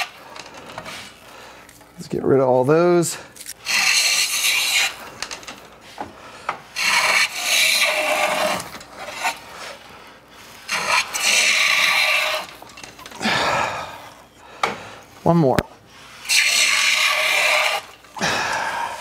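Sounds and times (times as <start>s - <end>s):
hand plane rasping along wood: 3.7s - 5.0s, 6.8s - 9.7s, 10.7s - 12.6s.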